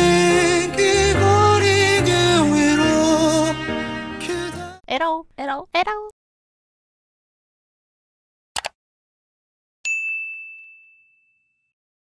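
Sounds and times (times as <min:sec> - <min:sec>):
notification bell chime: 0:09.9 - 0:11.7.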